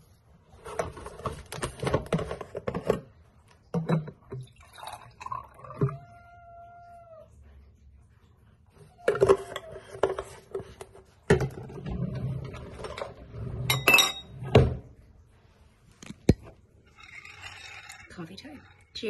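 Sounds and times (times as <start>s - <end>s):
coffee pouring into a glass: 4.3s - 6.0s, 16.8s - 19.0s
cat meowing: 5.6s - 7.4s.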